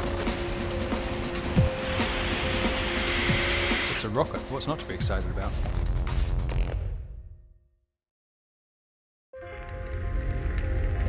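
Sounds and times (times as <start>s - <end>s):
rocket motor rushing: 0.0s - 4.0s
background music: 0.0s - 7.4s, 9.4s - 11.0s.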